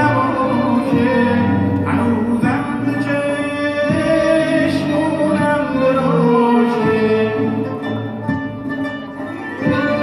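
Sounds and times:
bowed strings: 0.0s - 10.0s
low bass line: 0.0s - 10.0s
struck string instrument: 0.0s - 10.0s.

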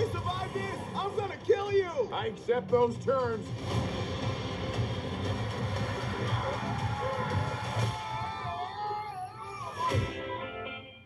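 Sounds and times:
trailer music: 0.0s - 8.7s.

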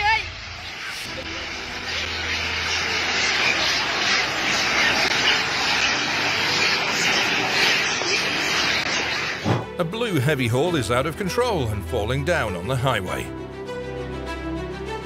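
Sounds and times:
macaques fighting and screeching: 0.7s - 9.5s.

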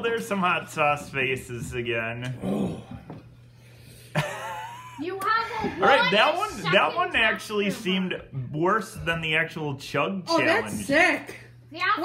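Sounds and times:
person whimpering: 2.4s - 3.0s.

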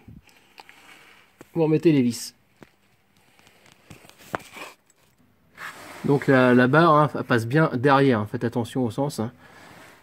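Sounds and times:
rustling and scraping handling noise: 2.4s - 7.5s, 9.4s - 10.0s.

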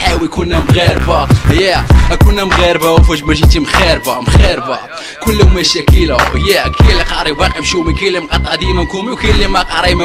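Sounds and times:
rapping over a beat: 0.0s - 10.0s
heavy kick drum: 0.6s - 3.6s, 4.3s - 4.5s, 5.3s - 7.0s.

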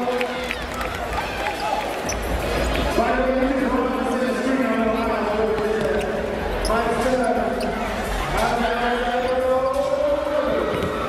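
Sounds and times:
voices in a large arena: 0.0s - 11.0s.

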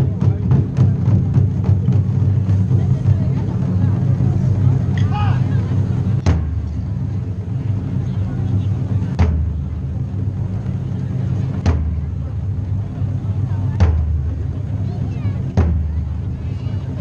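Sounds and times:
crowd murmur: 0.0s - 17.0s
low rumble: 0.0s - 17.0s.

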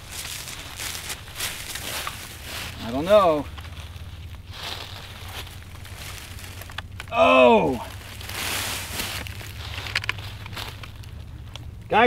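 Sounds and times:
footsteps crunching through dry leaves: 0.0s - 12.0s
low steady rumble: 0.0s - 12.0s.

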